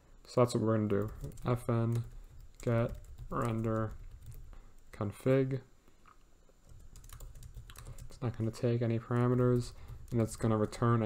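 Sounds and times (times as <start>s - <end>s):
faint typing on computer keyboard: 0.6s - 11.0s.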